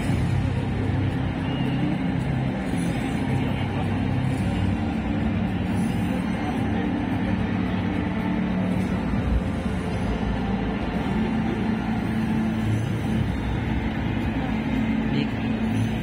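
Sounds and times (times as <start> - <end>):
crowd hubbub: 0.0 - 16.0
faint background music: 0.0 - 16.0.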